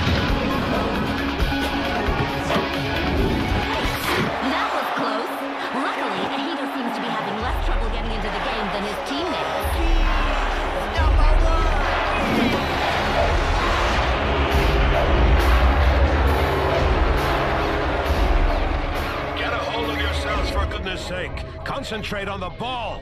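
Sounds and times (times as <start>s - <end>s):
stadium crowd cheering: 0.0s - 21.8s
background music with deep bass: 0.0s - 23.0s.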